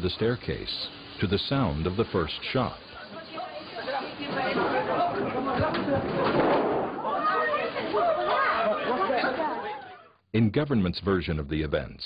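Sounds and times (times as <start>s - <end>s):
men talking and calling: 0.0s - 10.5s.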